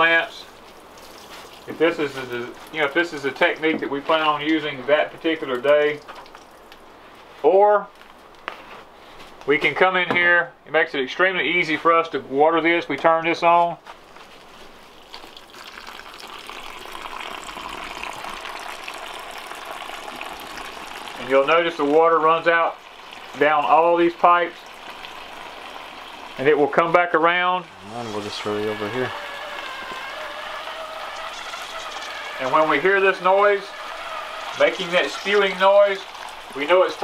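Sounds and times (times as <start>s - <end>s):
water rushing through pipes: 0.0s - 6.9s, 14.8s - 37.0s.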